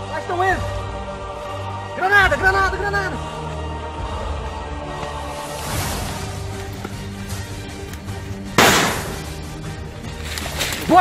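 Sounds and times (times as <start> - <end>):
background music with held tones: 0.0 - 11.0
grenade explosion bang: 8.6 - 9.4.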